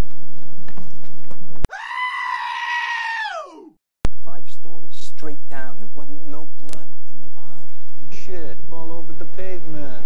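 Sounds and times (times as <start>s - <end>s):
high-pitched scream: 1.7s - 3.7s.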